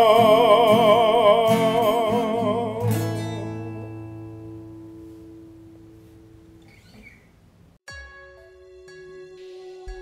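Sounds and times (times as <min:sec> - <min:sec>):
acoustic guitar chord ringing: 0:00.0 - 0:06.8.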